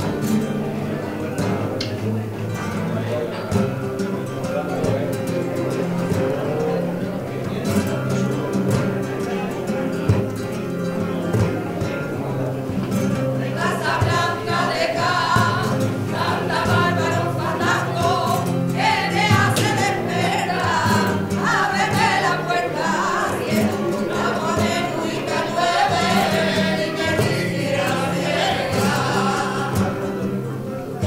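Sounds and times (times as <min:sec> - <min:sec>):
group singing flamenco: 0:00.0 - 0:31.0
guitars: 0:00.0 - 0:31.0.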